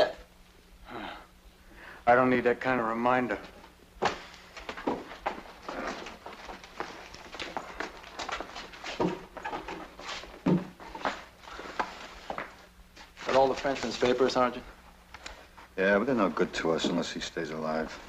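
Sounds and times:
footsteps of people walking: 3.4s - 17.1s.

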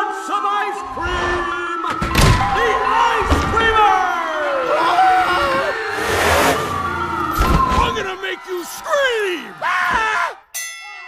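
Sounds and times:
cartoon monster truck engine revving: 4.7s - 7.4s.

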